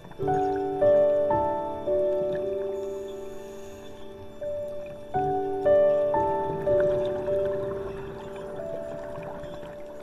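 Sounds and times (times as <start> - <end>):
soft piano notes: 0.0 - 10.0.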